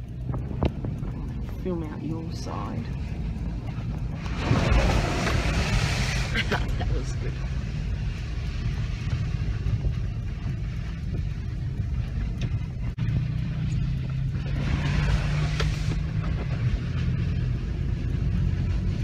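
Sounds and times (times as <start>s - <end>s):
car engine drone: 0.0s - 19.0s
tyre and road rumble: 0.0s - 19.0s.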